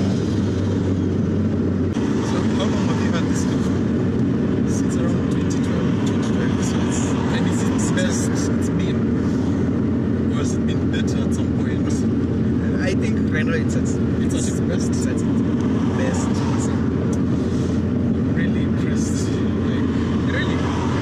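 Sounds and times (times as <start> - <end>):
car engine and road drone: 0.0 - 21.0.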